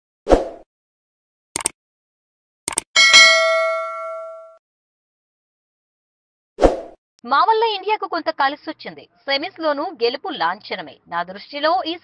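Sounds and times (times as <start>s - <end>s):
mouse-like double clicks: 1.6s - 1.8s
bright bell ding: 3.0s - 4.6s.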